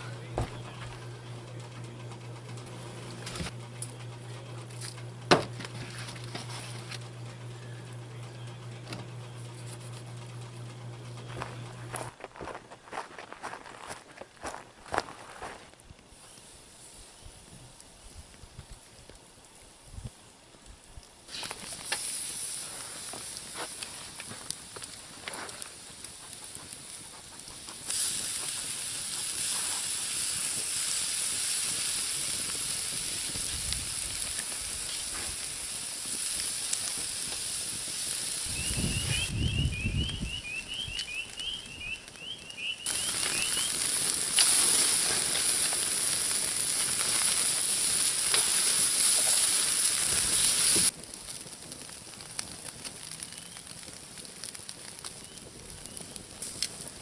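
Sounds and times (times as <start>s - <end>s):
meat sizzling on a grill: 19.6s - 57.0s.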